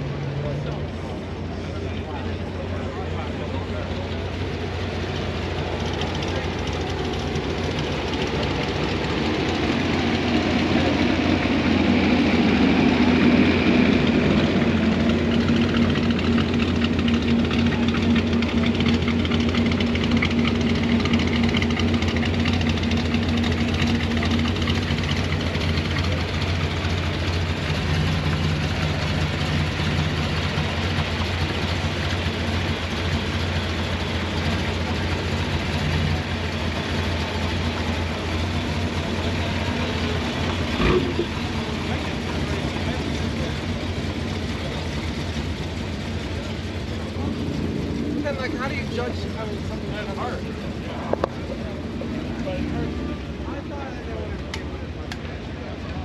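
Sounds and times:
car engine idling: 0.0 - 56.0
low engine hum: 0.0 - 56.0.

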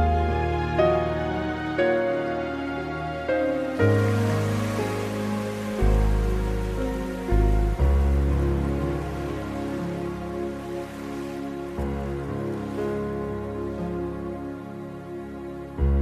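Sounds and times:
slow gentle background music: 0.0 - 16.0
rain hiss: 3.8 - 10.0.

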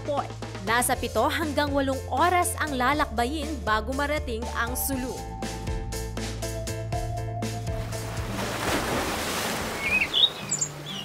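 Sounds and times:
birds chirping: 9.3 - 11.0.

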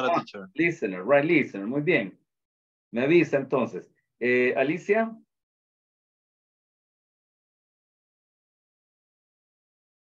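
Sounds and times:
man speaking: 0.0 - 2.2.

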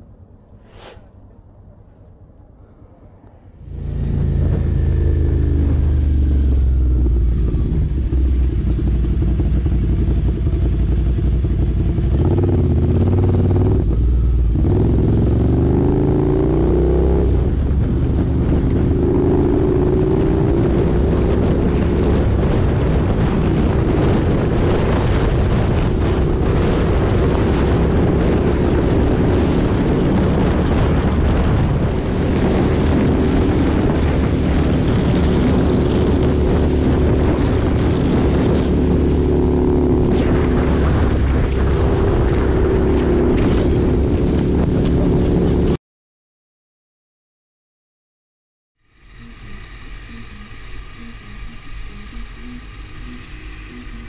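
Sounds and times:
motorcycle engine accelerating: 3.5 - 45.8, 48.8 - 54.0.

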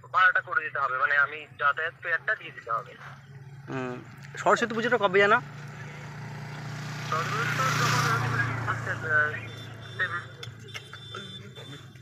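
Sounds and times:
vehicle engine drone passing: 1.9 - 12.0.

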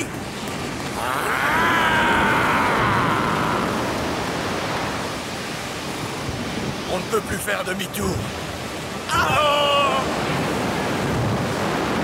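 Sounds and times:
cartoon water rushing: 9.0 - 10.4.

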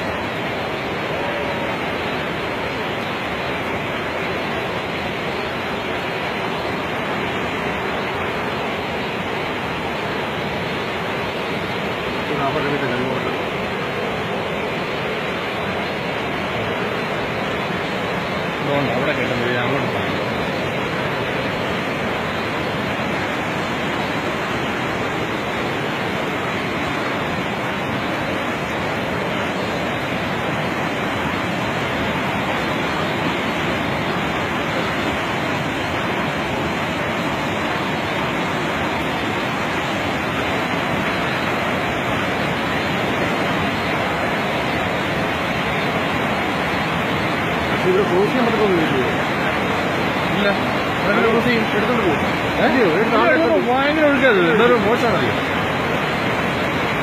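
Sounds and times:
floodwater rushing: 0.0 - 57.0.

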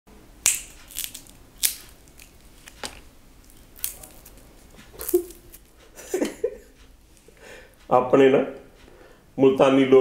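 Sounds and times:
peanut shells cracking: 0.4 - 5.8.

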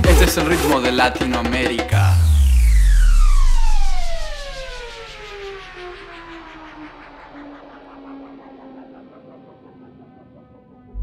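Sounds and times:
deep bass drop: 2.1 - 9.2
falling-pitch electronic sweep: 2.1 - 11.0.

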